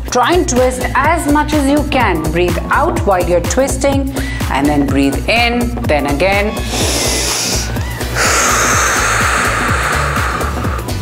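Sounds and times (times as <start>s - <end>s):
background music with steady beat: 0.0s - 11.0s
forceful breath out through mouth: 6.6s - 11.0s.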